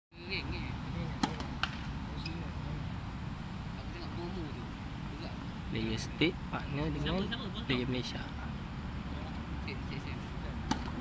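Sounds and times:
tennis ball hits: 0:01.2 - 0:01.9, 0:10.6 - 0:11.0.

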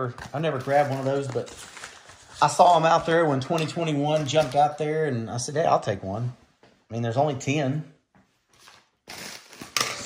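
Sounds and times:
bubble mailer crinkling: 0:00.0 - 0:04.8.

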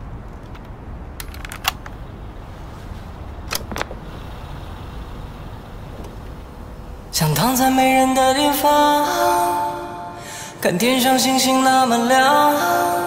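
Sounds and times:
low city traffic rumble: 0:00.0 - 0:08.9.

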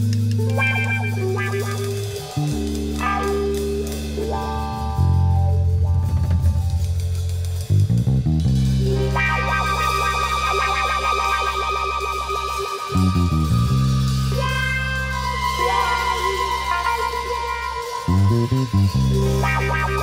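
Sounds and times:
bass guitar: 0:00.0 - 0:20.0
drum kit: 0:00.0 - 0:20.0
electric guitar: 0:00.0 - 0:20.0.

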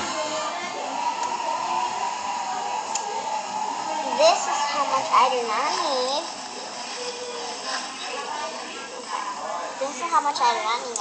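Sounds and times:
girl speaking: 0:04.2 - 0:06.3.

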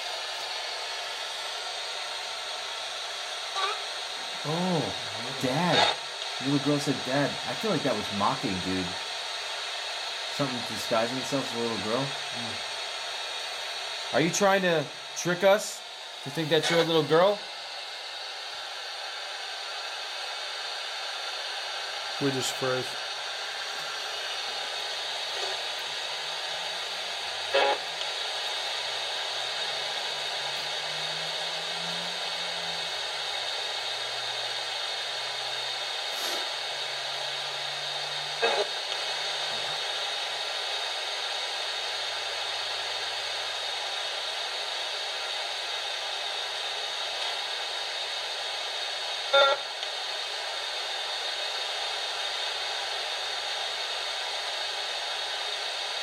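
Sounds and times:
radio static hiss: 0:00.0 - 0:56.0.

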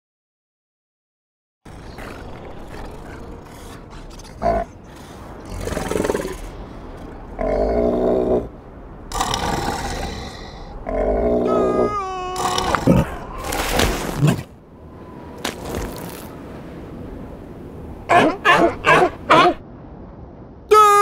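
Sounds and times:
steady wind-like hiss: 0:01.7 - 0:13.6, 0:14.5 - 0:20.7.

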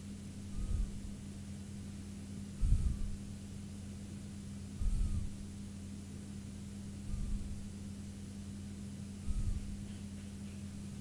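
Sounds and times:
low hum: 0:00.0 - 0:11.0
faint hiss: 0:04.7 - 0:05.7.

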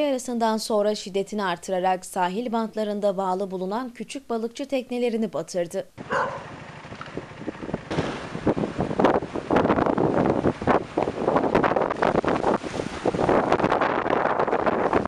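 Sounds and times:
storm wind buffeting microphone: 0:07.1 - 0:15.0.

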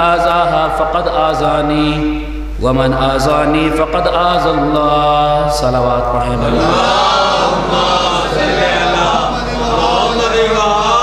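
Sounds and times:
men chanting together: 0:06.4 - 0:11.0.

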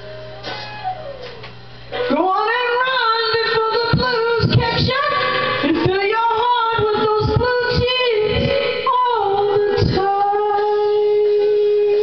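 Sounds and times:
blues backing track: 0:00.0 - 0:12.0
woman singing: 0:02.0 - 0:12.0.

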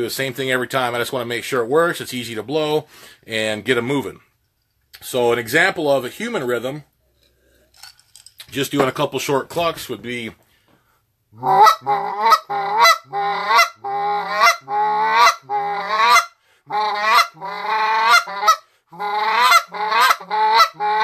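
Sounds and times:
goose call clucks: 0:11.4 - 0:21.0.

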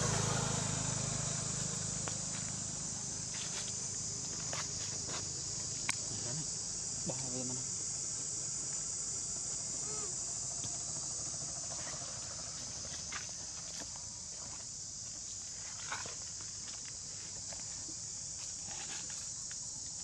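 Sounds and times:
high-pitched insect chorus: 0:00.0 - 0:20.0.

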